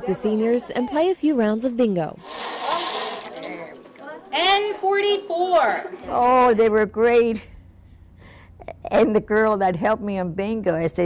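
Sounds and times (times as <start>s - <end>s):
bingo balls rattling in a cage: 2.2s - 3.9s.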